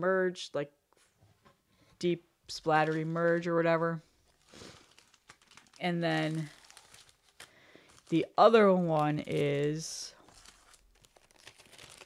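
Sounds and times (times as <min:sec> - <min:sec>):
record sleeve rustling: 0:02.6 - 0:12.0.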